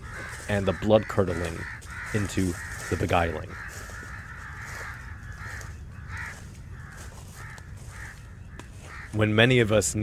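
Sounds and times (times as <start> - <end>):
crows cawing: 0.0 - 9.3.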